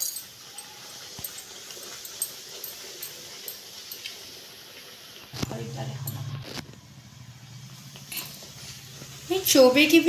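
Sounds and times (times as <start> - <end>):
bread sizzling in hot oil: 0.0 - 10.0.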